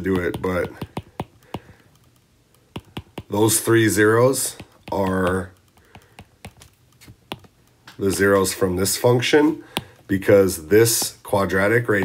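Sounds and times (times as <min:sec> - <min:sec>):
stylus tapping on screen: 0:00.0 - 0:08.6, 0:09.6 - 0:12.0.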